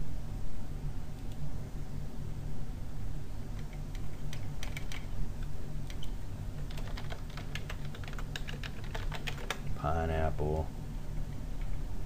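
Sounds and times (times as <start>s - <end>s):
steady low hum: 0.0s - 12.0s
computer keyboard typing: 3.6s - 5.1s, 5.9s - 9.7s.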